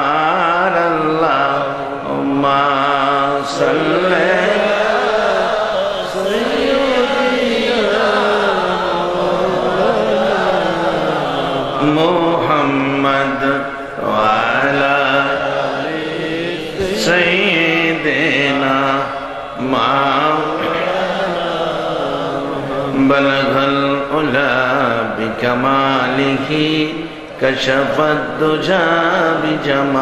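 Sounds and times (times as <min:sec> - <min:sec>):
man chanting: 0:00.0 - 0:30.0.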